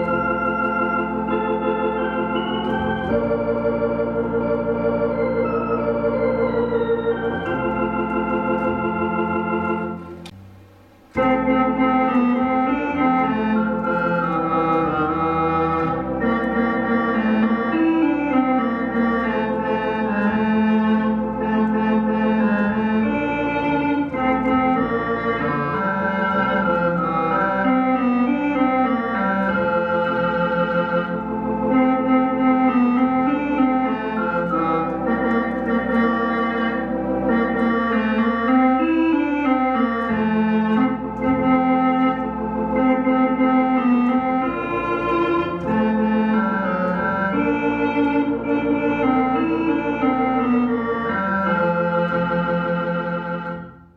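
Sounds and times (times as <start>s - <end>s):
electronic organ playing hymn: 0.0s - 53.9s.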